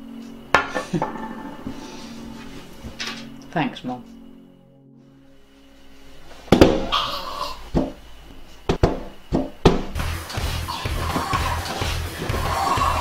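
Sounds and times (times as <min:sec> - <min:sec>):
music with steady beat: 0:09.9 - 0:13.0.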